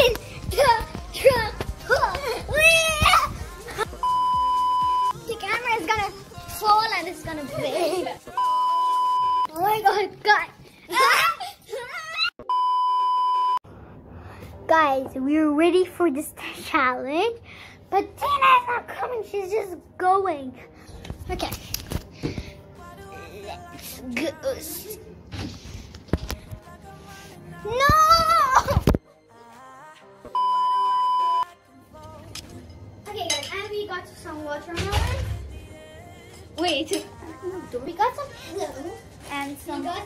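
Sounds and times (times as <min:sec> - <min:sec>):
girl's voice: 0:00.0 - 0:04.0, 0:05.1 - 0:08.3, 0:09.5 - 0:12.3, 0:14.6 - 0:21.7, 0:22.9 - 0:25.1, 0:27.6 - 0:28.9, 0:33.0 - 0:35.5, 0:36.6 - 0:40.0
quiet background music: 0:00.0 - 0:12.6, 0:13.7 - 0:40.0
electronic censor beep: 0:04.0 - 0:05.1, 0:08.4 - 0:09.5, 0:12.4 - 0:13.6, 0:30.3 - 0:31.5.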